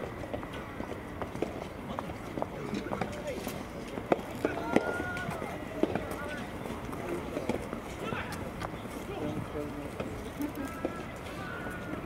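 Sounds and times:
faint voices: 1.6 - 12.0.

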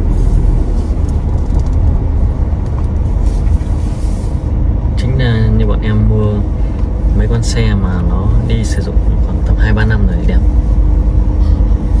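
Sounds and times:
wind buffeting microphone: 0.0 - 5.0.

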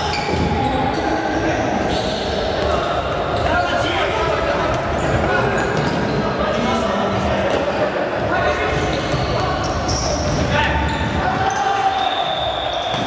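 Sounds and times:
players shouting: 8.4 - 13.0.

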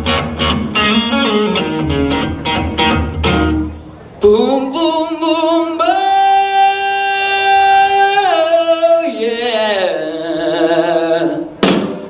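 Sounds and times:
person singing unaccompanied: 4.2 - 11.7.

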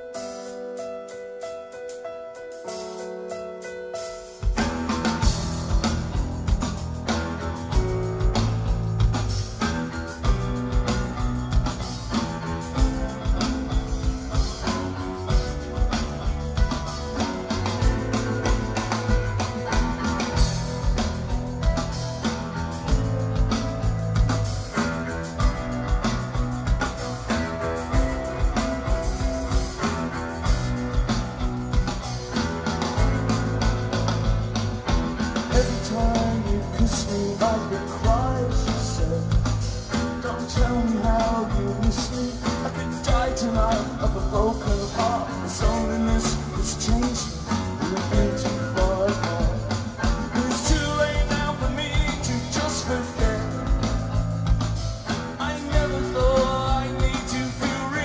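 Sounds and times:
rock band playing live: 0.0 - 58.0.

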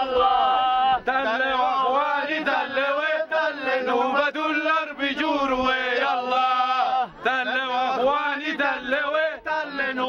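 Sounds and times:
men chanting a song: 0.0 - 10.0.

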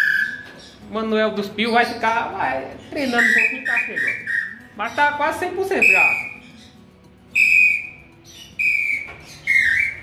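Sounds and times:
bird-call whistle notes: 0.0 - 0.8, 3.1 - 4.7, 5.8 - 6.6, 7.3 - 10.0.

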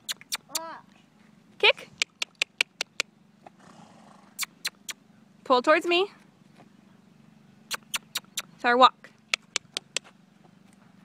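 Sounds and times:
tongue clicks: 0.0 - 0.7, 1.9 - 3.1, 4.4 - 5.0, 7.7 - 8.5, 9.3 - 10.1.

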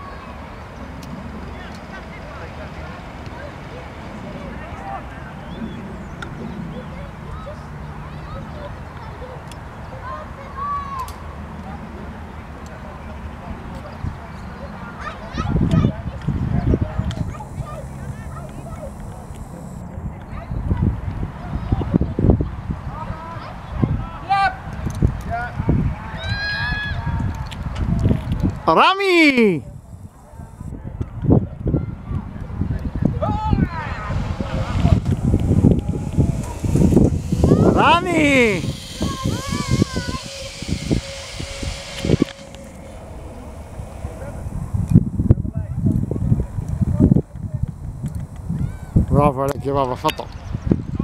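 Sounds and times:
distant indistinct voices: 0.0 - 51.0
zip wire pulley humming: 17.2 - 19.8, 33.2 - 49.2
wind buffeting microphone: 29.6 - 51.0.

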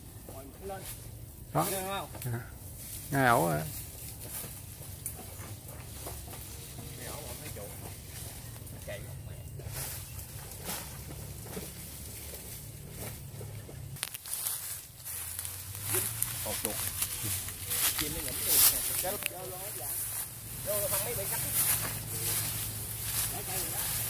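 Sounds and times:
leaves and stems rustling: 0.1 - 24.0
steady low rumble: 7.8 - 24.0
faint distant voices: 12.3 - 24.0.

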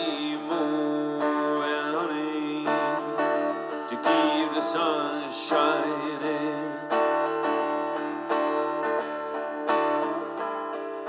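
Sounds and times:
person singing sustained notes: 0.0 - 7.0
acoustic guitar: 0.0 - 11.0.

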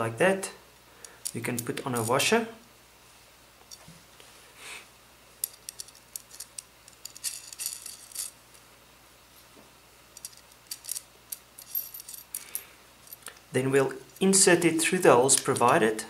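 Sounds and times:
washers and nuts clinking on metal: 5.4 - 8.4, 10.2 - 13.4.

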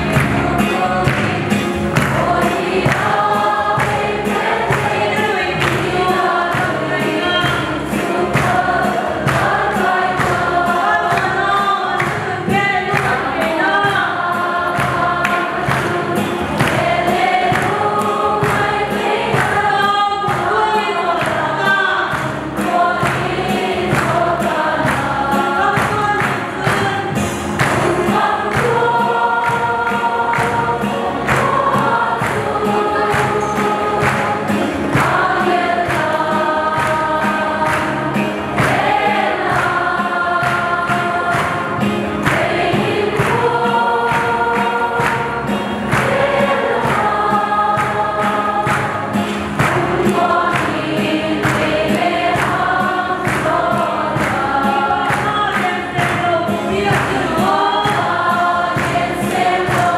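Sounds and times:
women's choir singing gospel: 0.0 - 59.9
steady beat: 22.2 - 59.9.

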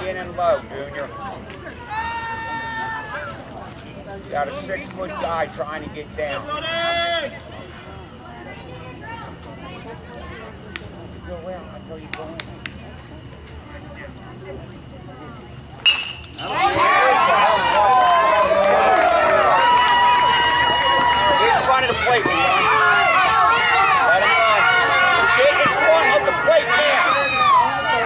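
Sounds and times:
crowd yelling and cheering: 1.8 - 3.5, 16.3 - 28.0
bat hitting baseball: 15.9 - 16.5.

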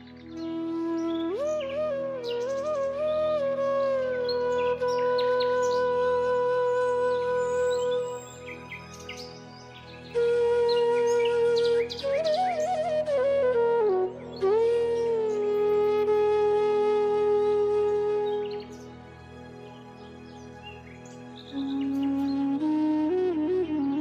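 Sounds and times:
flute holding low note: 0.0 - 19.4, 21.5 - 24.0
birds chirping: 4.2 - 13.0, 19.6 - 22.6.

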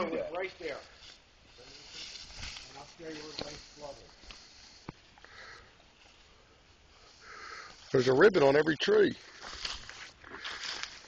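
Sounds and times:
footsteps through dry leaves: 0.6 - 4.8, 9.0 - 11.0.

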